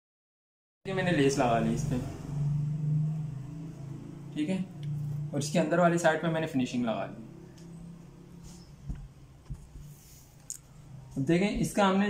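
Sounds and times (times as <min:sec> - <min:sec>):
low motor hum: 0:01.0 - 0:06.4, 0:07.0 - 0:11.7.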